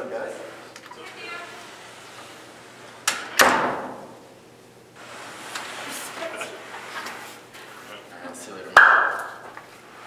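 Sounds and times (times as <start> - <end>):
sharp bangs: 3.0 - 4.2.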